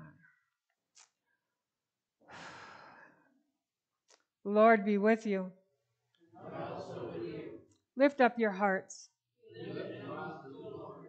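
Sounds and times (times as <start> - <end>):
breath into microphone: 2.2 - 3.4.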